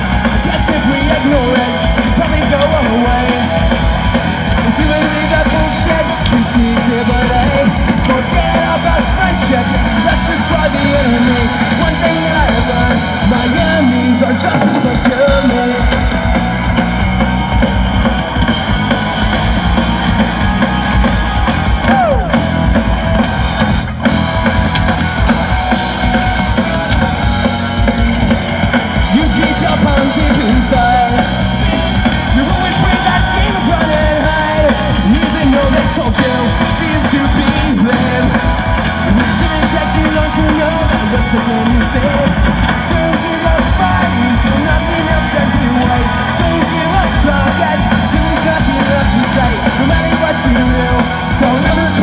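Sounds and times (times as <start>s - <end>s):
person singing lead vocal: 0.0s - 18.5s, 20.0s - 22.6s, 25.3s - 52.0s
bass guitar: 0.0s - 52.0s
drum kit: 0.0s - 52.0s
electric guitars: 0.0s - 52.0s.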